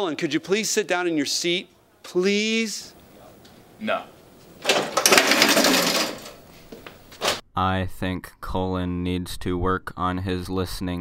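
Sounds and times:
metal chair clattering on floor: 4.6s - 7.4s.

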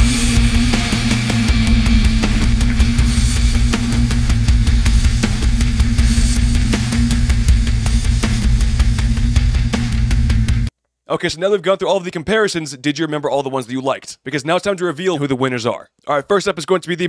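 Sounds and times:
heavy metal music: 0.0s - 10.7s.

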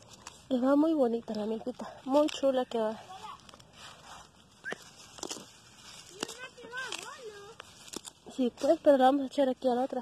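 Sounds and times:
rustling of grass underfoot: 0.0s - 10.0s.

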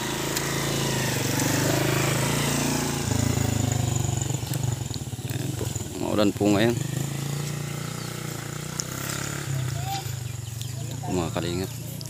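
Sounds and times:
small motorcycle engine running: 0.0s - 12.0s.

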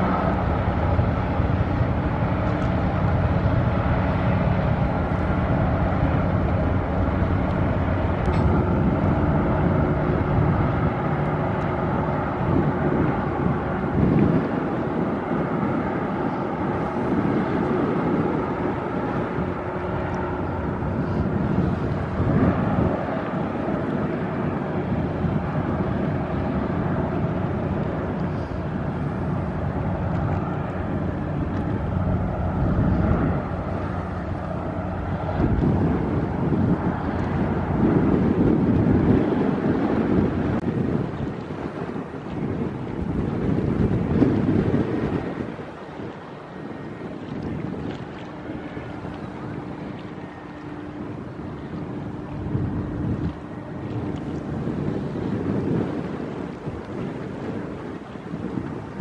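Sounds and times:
ship engine drone: 0.0s - 59.0s
wind buffeting microphone: 0.0s - 59.0s.

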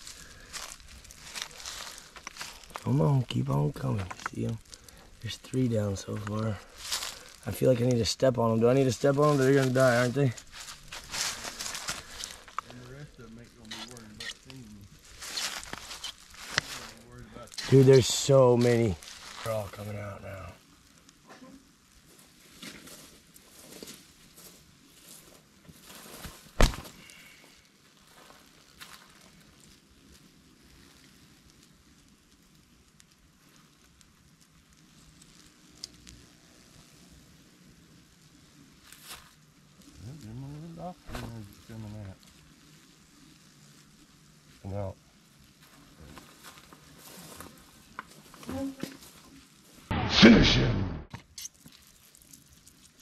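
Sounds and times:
faint crackling hiss: 0.0s - 53.0s
wasp buzzing past: 28.7s - 49.9s.

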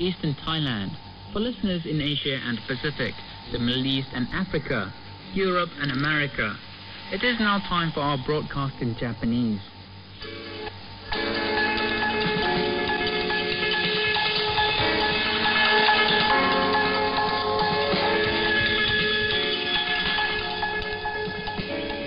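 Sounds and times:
music over shortwave radio: 10.2s - 22.0s.

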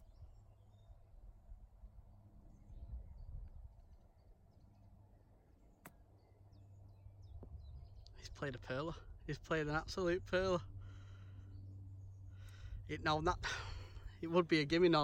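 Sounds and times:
faint bird chirps: 0.0s - 1.4s, 2.4s - 8.2s.

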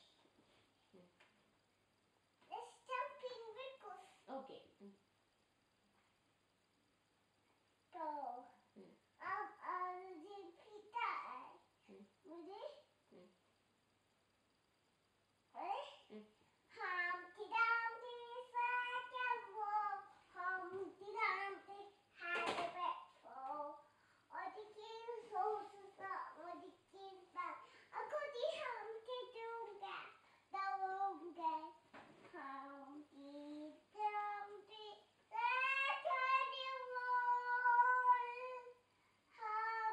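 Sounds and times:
toddler singing: 9.2s - 11.6s, 16.7s - 38.8s, 39.4s - 39.9s.

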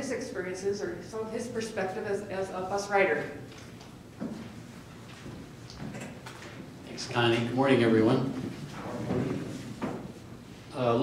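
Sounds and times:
man speaking: 6.9s - 9.2s, 10.7s - 11.0s.

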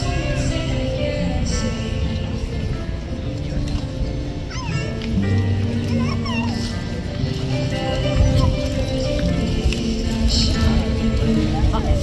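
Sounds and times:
woman singing into microphone: 0.0s - 2.7s, 7.7s - 12.0s
acoustic guitar: 0.0s - 12.0s.

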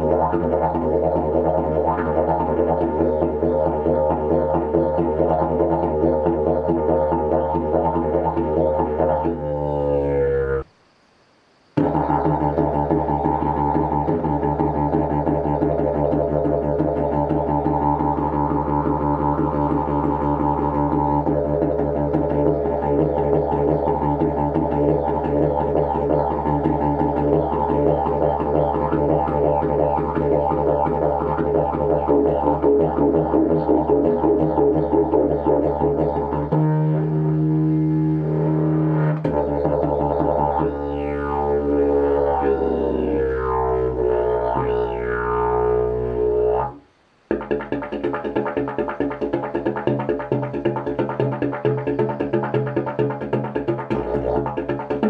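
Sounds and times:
didgeridoo drone: 0.0s - 10.7s, 11.8s - 55.0s.

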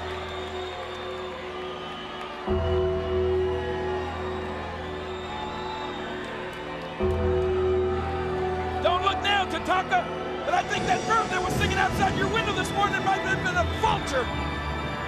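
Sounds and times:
slow sombre music with low chords: 0.0s - 15.0s.

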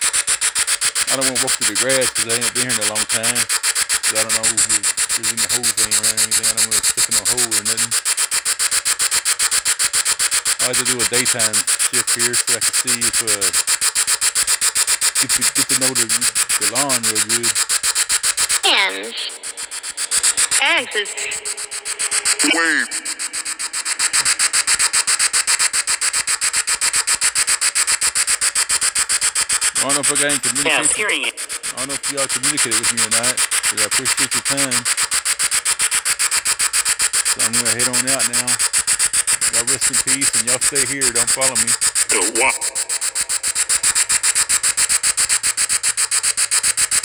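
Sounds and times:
high hiss: 0.0s - 47.0s
pulsing chopped static: 0.0s - 47.0s
warbling voice-like fragment: 1.1s - 3.4s, 18.6s - 24.4s, 29.8s - 34.6s, 39.5s - 43.8s.

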